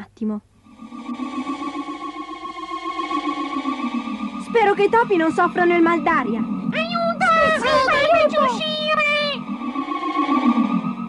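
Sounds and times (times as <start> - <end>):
fluttering synthesizer chord: 0.6 - 11.0.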